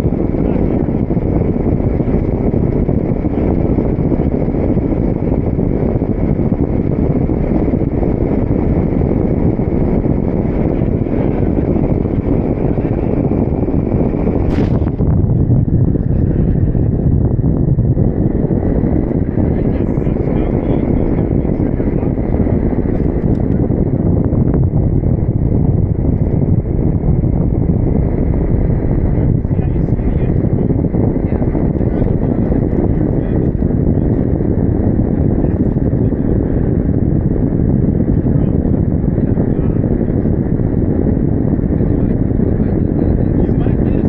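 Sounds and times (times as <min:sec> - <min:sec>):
wind on microphone: 0:00.0 - 0:44.0.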